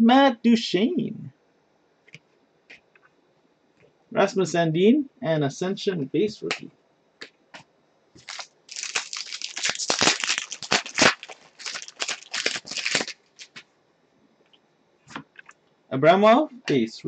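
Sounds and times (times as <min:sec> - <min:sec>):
foil wrapper crinkling and tearing: 0:08.2 - 0:13.6.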